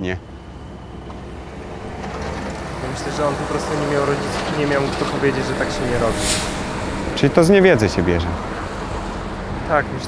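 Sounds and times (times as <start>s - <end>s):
vehicle engine rumble: 0.2s - 10.0s.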